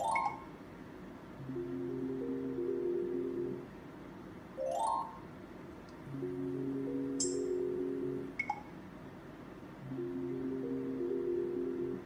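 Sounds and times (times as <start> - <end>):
held low electronic melody: 1.4 - 3.7, 6.1 - 8.4, 9.8 - 12.0.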